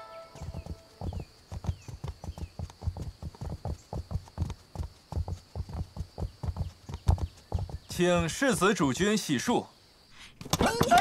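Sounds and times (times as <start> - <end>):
hard footfalls clopping: 0.4 - 9.1.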